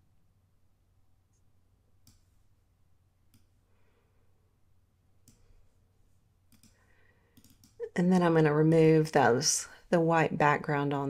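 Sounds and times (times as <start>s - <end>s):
computer mouse clicks: 2.0s - 2.3s, 5.2s - 5.5s, 6.5s - 7.8s.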